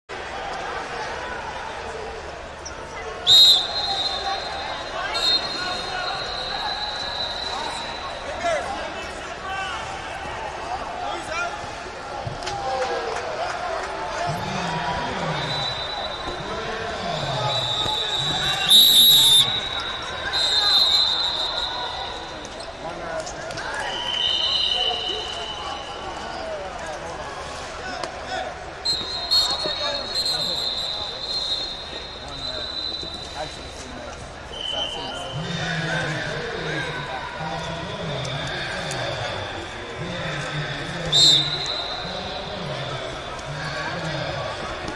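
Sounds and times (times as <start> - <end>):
shrill referee whistle blasts: 3.2 - 8.4, 15.0 - 22.5, 23.8 - 26.4, 28.8 - 35.4, 41.1 - 43.1.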